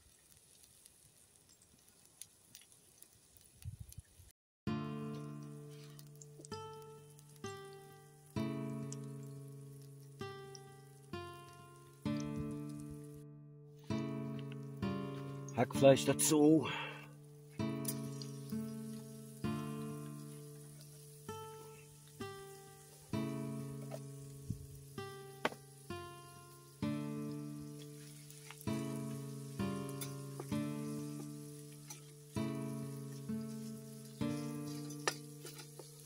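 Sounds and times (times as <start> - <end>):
meat sizzling in a pan: 0.0 - 4.3, 5.2 - 13.2, 17.2 - 36.0
acoustic guitar picking slow notes: 4.7 - 36.0.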